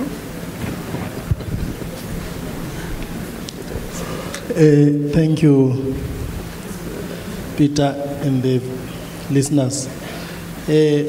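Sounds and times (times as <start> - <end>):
low rumble of room noise: 0.0 - 11.0.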